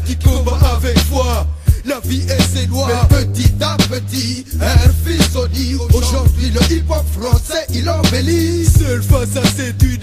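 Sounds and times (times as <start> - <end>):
rapping over a hip-hop beat: 0.0 - 10.0.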